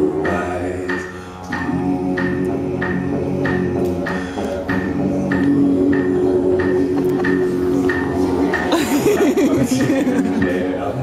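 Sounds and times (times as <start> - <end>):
beatboxing into a microphone: 0.0 - 8.9.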